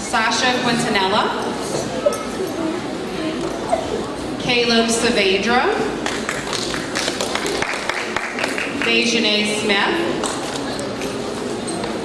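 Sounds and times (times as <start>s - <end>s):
audience clapping: 6.0s - 9.0s.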